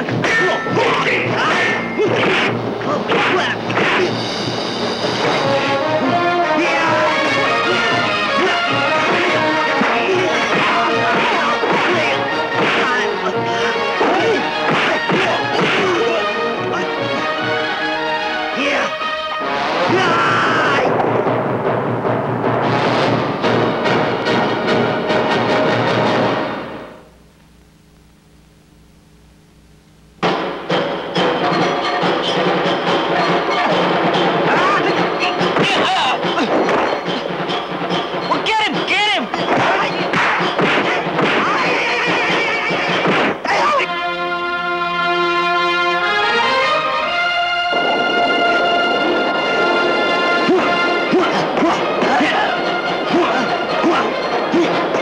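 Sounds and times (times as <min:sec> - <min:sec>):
film music score: 0:00.0 - 0:27.2, 0:30.2 - 0:55.0
punch impacts: 0:14.1 - 0:16.0, 0:39.5 - 0:43.6
low hum: 0:26.6 - 0:30.8.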